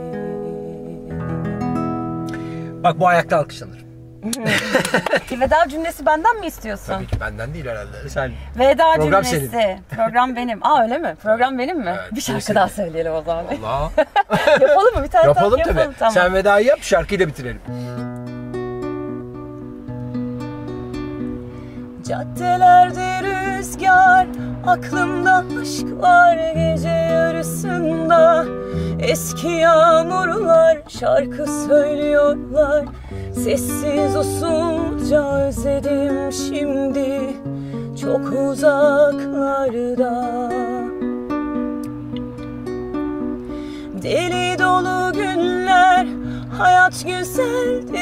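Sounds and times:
classical guitar picking chords: 0.0s - 5.2s, 17.6s - 48.0s.

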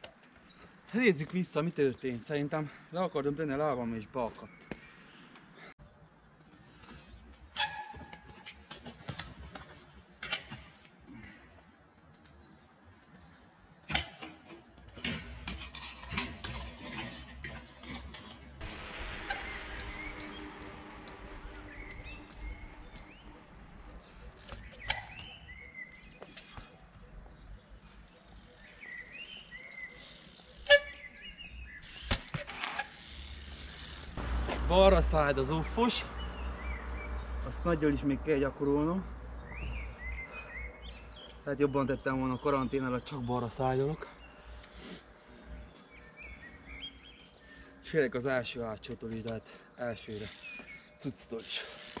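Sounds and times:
steady hum: 18.6s - 23.8s.

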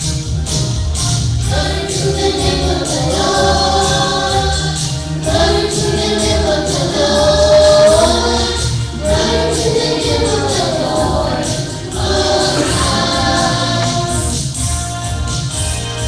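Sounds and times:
instrumental accompaniment with beat: 0.0s - 16.0s
children's choir singing gospel: 1.4s - 14.8s.

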